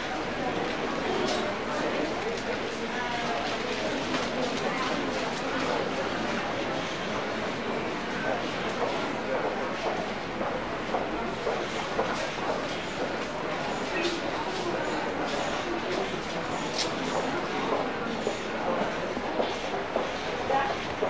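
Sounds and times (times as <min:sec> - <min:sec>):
crowd babble: 0:00.0 - 0:21.0.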